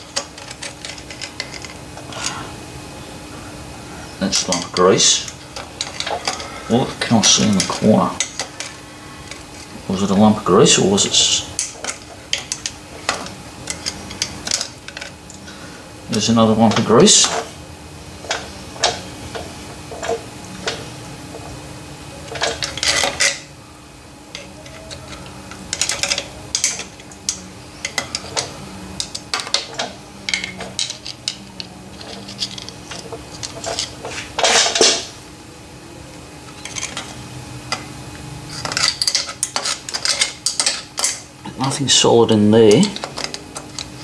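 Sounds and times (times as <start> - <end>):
screwdriver clinking on metal: 0.0 - 1.8, 11.1 - 15.1, 22.3 - 23.4, 24.3 - 35.1, 38.5 - 41.2, 42.7 - 43.9
faint steady hum: 0.0 - 44.0.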